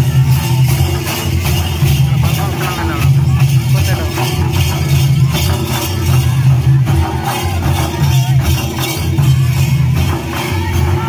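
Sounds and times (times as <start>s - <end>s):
drum beating a rhythm: 0.0s - 11.0s
voices singing: 5.4s - 11.0s.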